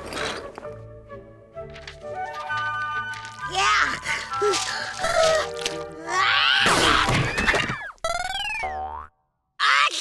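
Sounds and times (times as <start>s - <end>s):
cartoon boing: 8.1s - 9.2s.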